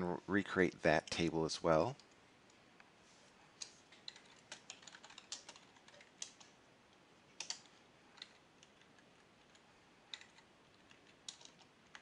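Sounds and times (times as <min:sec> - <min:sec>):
computer keyboard keystrokes: 0:03.6 - 0:06.5, 0:07.4 - 0:12.0.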